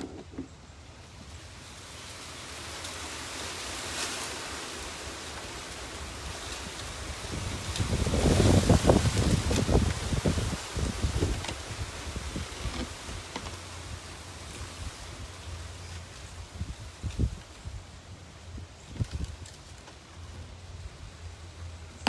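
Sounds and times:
wind noise on microphone: 0:06.1 - 0:19.8.

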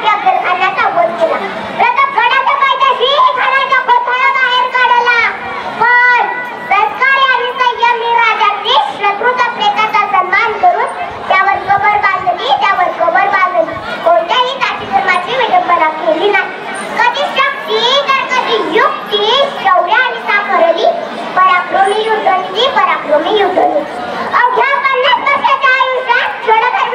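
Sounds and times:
girl speaking into microphone: 0:00.0 - 0:26.9.

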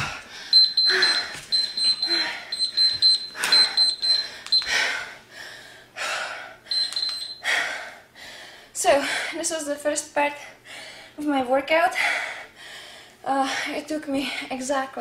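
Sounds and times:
heavy breathing: 0:00.0 - 0:02.6
digital timer beeping: 0:00.5 - 0:04.8, 0:06.7 - 0:07.4.

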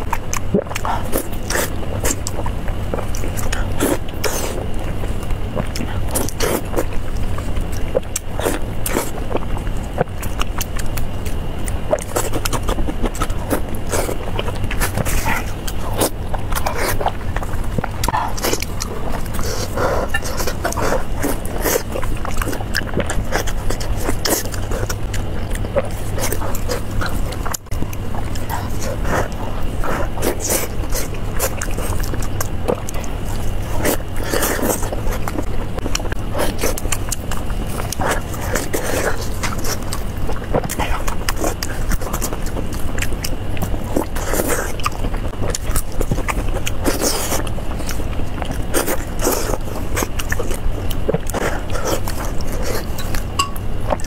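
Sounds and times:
steady low hum: 0:00.0 - 0:54.0
wet chewing and lip-smacking: 0:00.0 - 0:54.0.

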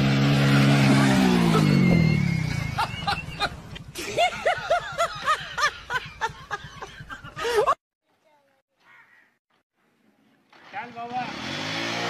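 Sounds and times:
person laughing hard: 0:02.5 - 0:07.8.

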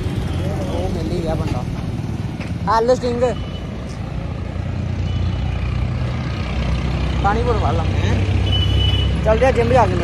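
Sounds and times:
street traffic engine rumble: 0:00.0 - 0:10.0.

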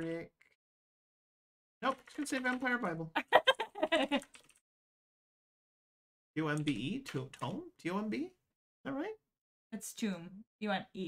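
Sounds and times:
person laughing: 0:03.2 - 0:04.3.

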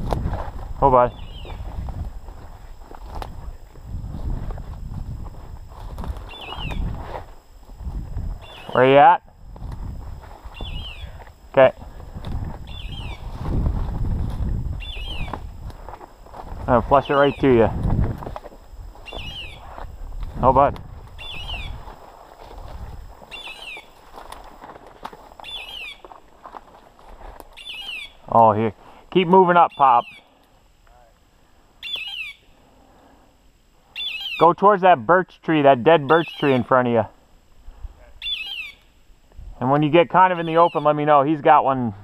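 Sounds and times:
footsteps through brush: 0:00.0 - 0:28.3.

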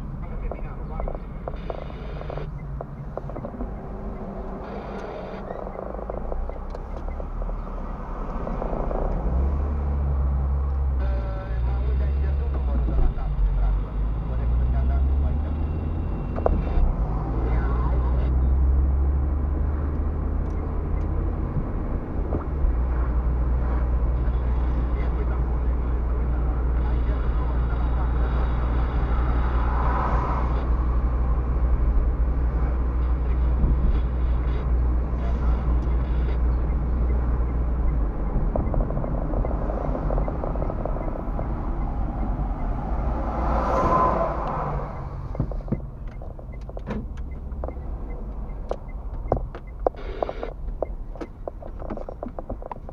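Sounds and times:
car engine and tyre drone: 0:00.0 - 0:52.9.

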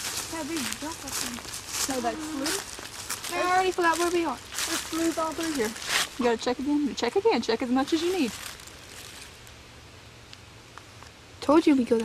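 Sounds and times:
footsteps crunching through dry leaves: 0:00.0 - 0:06.9, 0:07.6 - 0:09.6
women talking: 0:00.2 - 0:08.4, 0:11.4 - 0:12.0.

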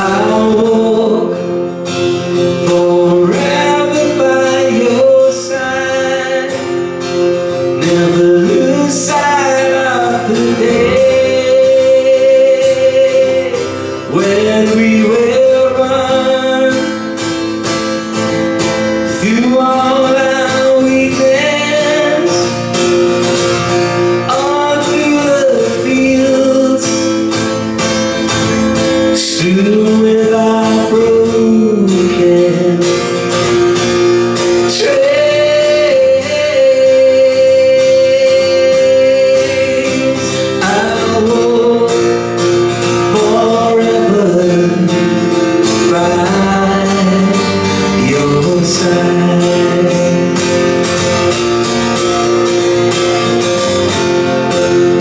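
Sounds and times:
man singing: 0:00.0 - 0:55.0
strummed guitar: 0:00.0 - 0:55.0.

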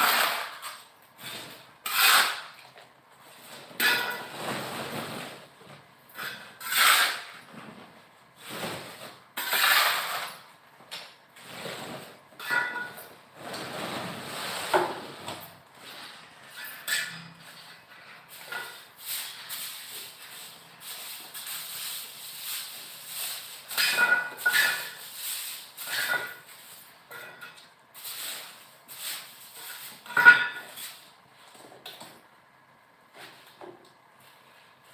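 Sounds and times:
hand tool scraping cement: 0:00.0 - 0:02.6, 0:06.1 - 0:07.5, 0:08.4 - 0:10.4, 0:11.4 - 0:27.3.

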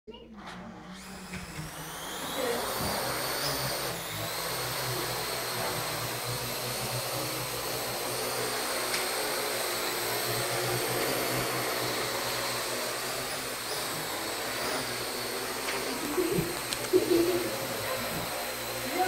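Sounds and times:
quadcopter motors whining: 0:00.5 - 0:19.0.

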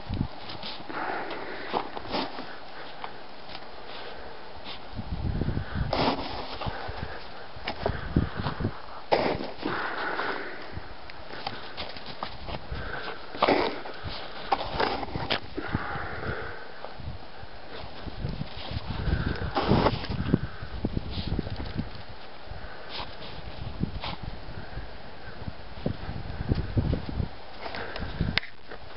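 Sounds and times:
crunching packed snow: 0:00.4 - 0:05.0, 0:05.6 - 0:16.8, 0:17.6 - 0:24.3
dog sniffing and snuffling: 0:00.4 - 0:05.0, 0:11.3 - 0:15.9, 0:21.1 - 0:24.3.

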